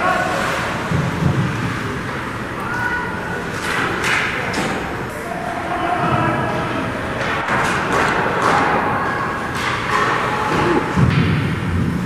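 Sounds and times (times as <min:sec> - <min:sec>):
low rumble of rink hall: 0:00.0 - 0:12.0
hockey sticks and puck knocking: 0:03.5 - 0:04.8, 0:07.2 - 0:11.9.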